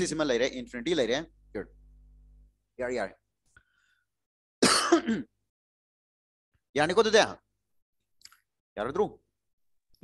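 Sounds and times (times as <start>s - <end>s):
man clearing his throat: 4.6s - 5.4s.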